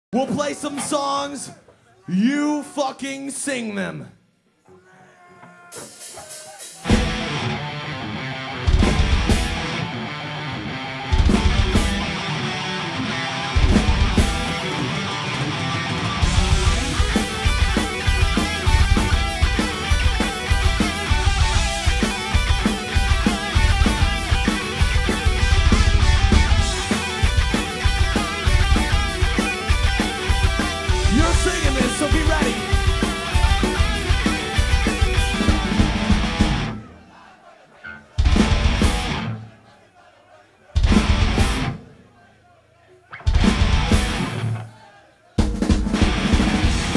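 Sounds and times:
heavy metal band playing: 5.7 - 37.0, 37.8 - 39.5, 40.8 - 41.9, 43.2 - 44.7, 45.4 - 46.9
electric guitar: 6.8 - 36.8, 43.2 - 44.6.

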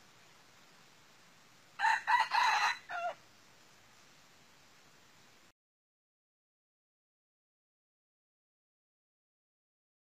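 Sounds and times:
rooster crowing: 1.8 - 3.2.

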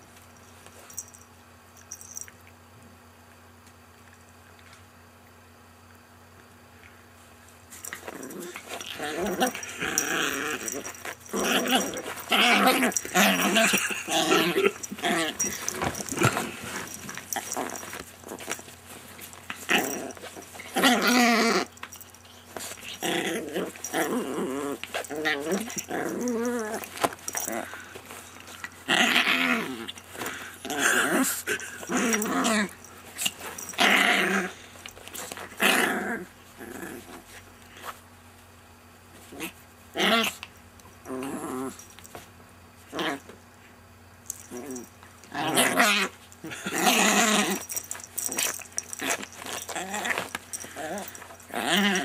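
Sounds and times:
small dog growling: 7.9 - 38.0, 39.2 - 41.9, 42.9 - 43.3, 44.4 - 52.0.

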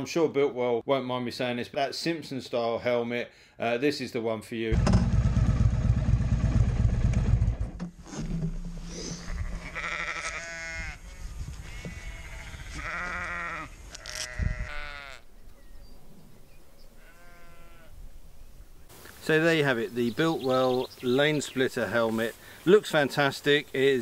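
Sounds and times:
motorcycle engine running: 4.8 - 7.9
sheep bleating: 9.1 - 15.3, 17.0 - 17.9.

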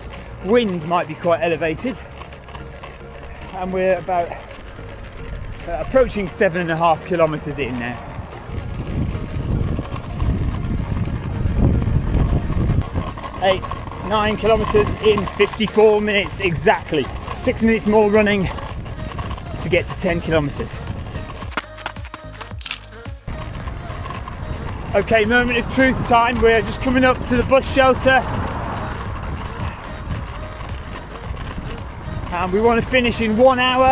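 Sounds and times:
wind on microphone: 7.9 - 15.4, 16.4 - 21.5, 23.3 - 32.4
sharp clicks: 21.2 - 24.6.

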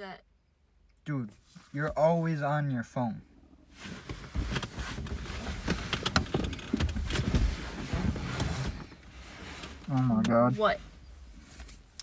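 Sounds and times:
person moving about inside a car: 1.0 - 12.0.

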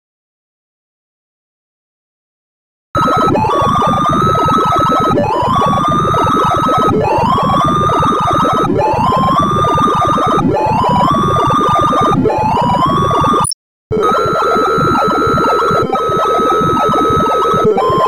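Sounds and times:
synthesized chirping beeps: 3.0 - 13.6.

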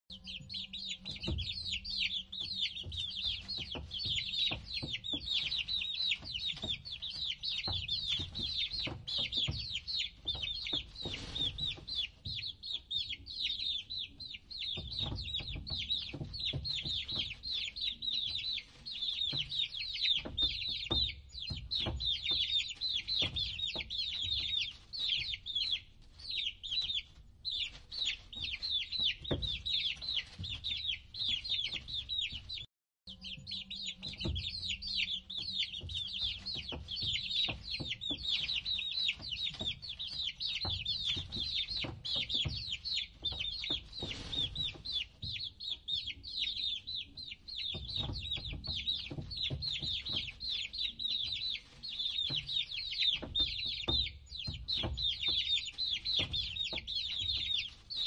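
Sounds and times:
chicks peeping: 0.1 - 58.0.

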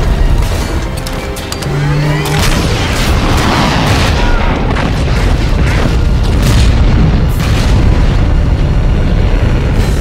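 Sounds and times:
film music score: 0.0 - 10.0
deep rumble: 1.7 - 10.0
explosion blasts: 2.3 - 10.0.

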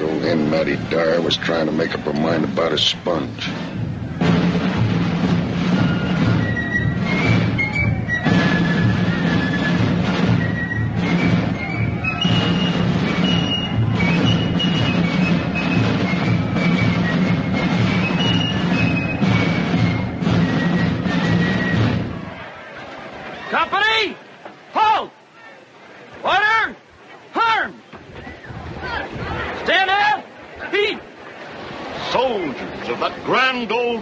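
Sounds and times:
band playing military march: 0.0 - 22.8.

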